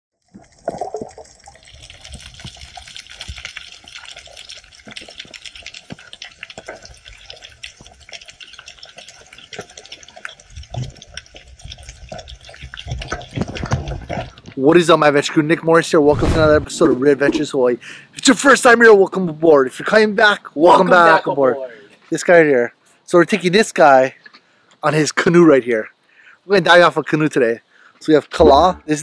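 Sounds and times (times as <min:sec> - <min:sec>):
dense crackle of reef clicks: 0:00.1 - 0:17.5.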